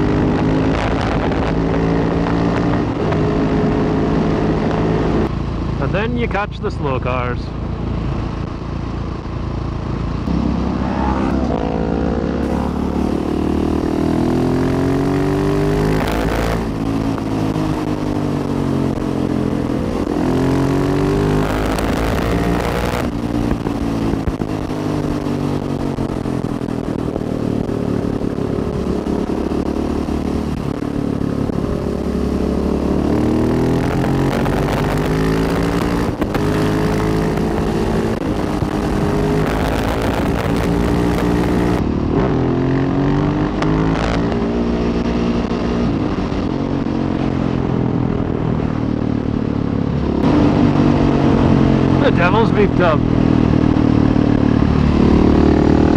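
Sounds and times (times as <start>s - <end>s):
wind noise: 0.0s - 5.8s, 7.8s - 55.9s
motorcycle engine accelerating: 0.0s - 55.9s.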